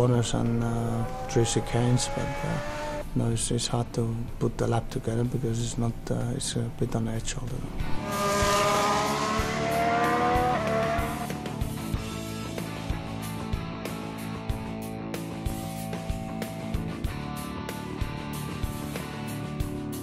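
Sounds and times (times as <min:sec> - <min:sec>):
racing car engine accelerating: 0:00.4 - 0:03.0, 0:07.8 - 0:11.9
music with steady beat: 0:08.0 - 0:20.0.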